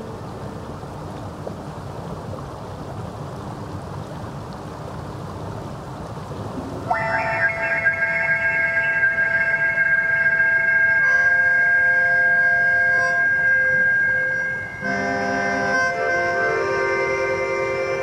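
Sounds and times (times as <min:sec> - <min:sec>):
stream water running: 0:00.0 - 0:18.0
synthesizer chord through small speaker: 0:06.9 - 0:18.0.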